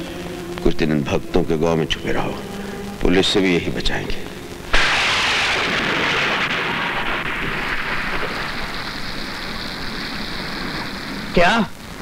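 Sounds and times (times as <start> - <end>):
rain pouring: 0.0 - 12.0
low rumble of thunder: 4.7 - 12.0.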